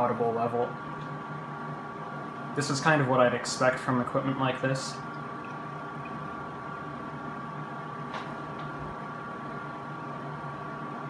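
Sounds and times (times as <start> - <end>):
cooling fans whirring with high whine: 0.0 - 11.0.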